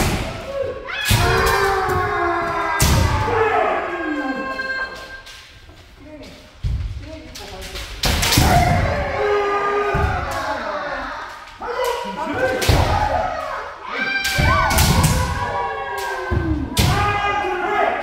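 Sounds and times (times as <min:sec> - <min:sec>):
people shouting: 0:00.0 - 0:05.2, 0:08.2 - 0:18.0.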